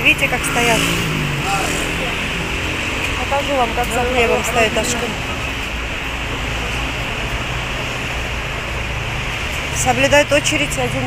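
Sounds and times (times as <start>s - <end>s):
outdoor street background noise: 0.0s - 11.0s.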